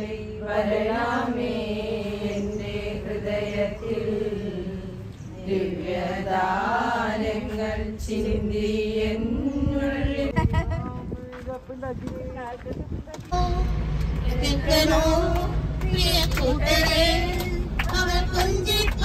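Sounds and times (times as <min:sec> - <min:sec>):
women chanting in unison: 0:00.0 - 0:10.3.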